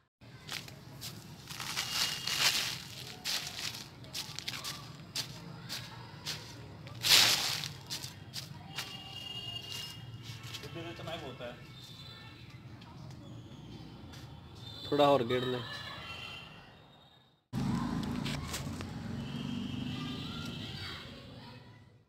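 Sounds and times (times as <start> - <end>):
shovel scraping through compost: 6.3 - 8.1.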